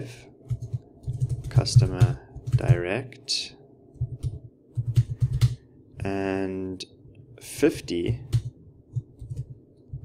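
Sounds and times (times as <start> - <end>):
typing on a keyboard: 0.5 - 2.8, 4.0 - 5.6, 8.2 - 10.0.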